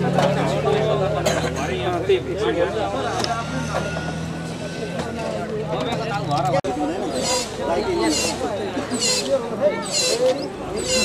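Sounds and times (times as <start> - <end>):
engine humming: 0.0 - 11.0
men talking: 0.0 - 11.0.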